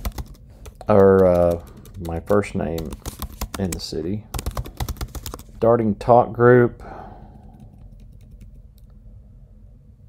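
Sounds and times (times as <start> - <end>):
keyboard typing: 0.0 - 5.5, 7.5 - 8.9.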